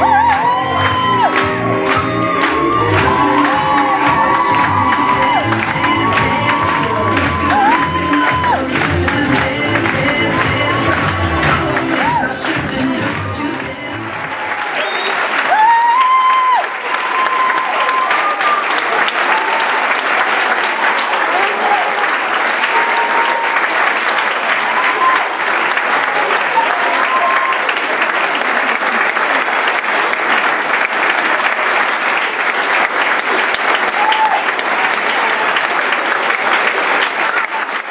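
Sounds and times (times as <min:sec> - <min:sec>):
high whoops and shouts: 0:00.0 - 0:08.8, 0:11.5 - 0:12.4, 0:14.4 - 0:19.8, 0:26.5 - 0:27.7, 0:33.9 - 0:34.5
dance music: 0:00.0 - 0:15.1
audience applauding and cheering: 0:00.0 - 0:37.9.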